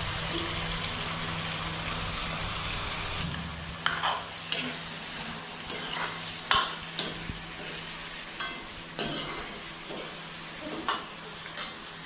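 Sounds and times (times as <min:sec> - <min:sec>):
food sizzling: 0:00.0 - 0:12.0
metal spatula scraping wok: 0:03.2 - 0:11.0.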